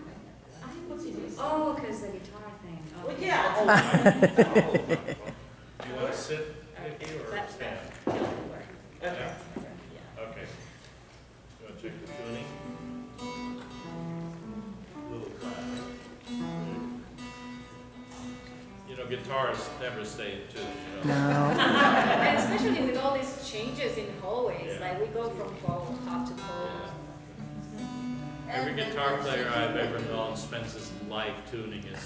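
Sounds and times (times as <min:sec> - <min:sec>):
acoustic guitar strings plucked: 0:12.0 - 0:18.8.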